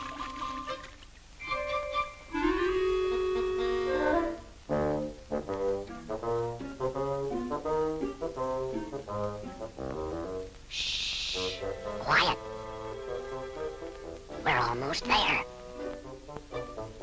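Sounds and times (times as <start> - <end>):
orchestral music led by brass: 1.4 - 10.6, 11.6 - 14.4, 15.5 - 17.0.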